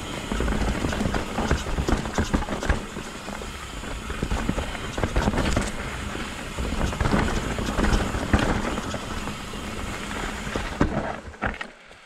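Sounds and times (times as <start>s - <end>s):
wind rumbling on microphone: 0.0s - 11.3s
bike tyres on dirt trail: 0.0s - 12.0s
bike knocks and rattles: 0.1s - 12.0s.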